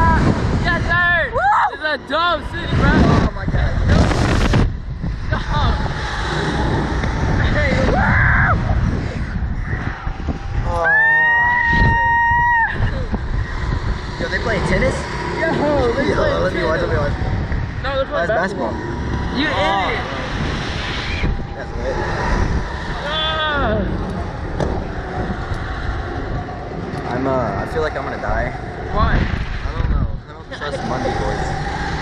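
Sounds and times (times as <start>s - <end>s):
wind buffeting microphone: 0.0s - 32.0s
person yelling woo: 10.8s - 12.9s.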